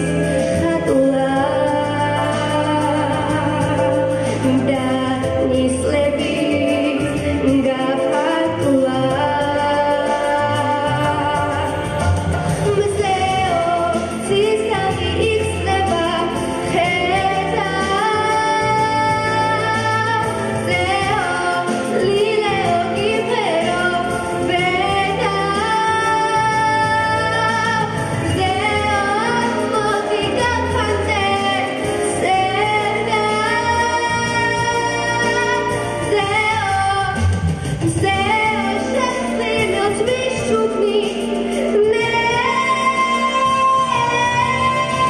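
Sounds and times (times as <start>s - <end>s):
girl singing into microphone: 0.0s - 45.0s
instrumental accompaniment: 0.0s - 45.0s.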